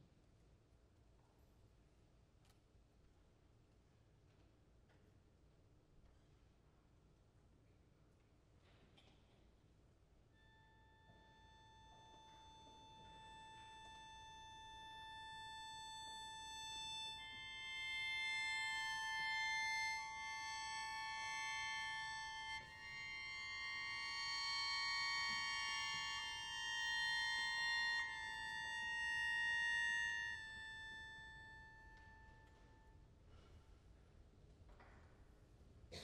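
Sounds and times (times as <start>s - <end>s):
mouth organ sustained chord: 10.4s - 33.0s.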